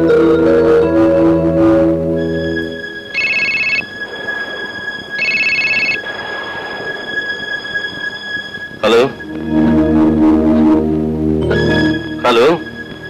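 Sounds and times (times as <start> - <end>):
telephone ringing: 3.1 - 3.9, 5.2 - 6.0.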